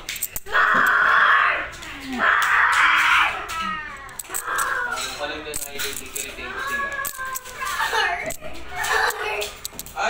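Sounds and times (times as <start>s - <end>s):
children's voices: 6.5s - 9.6s.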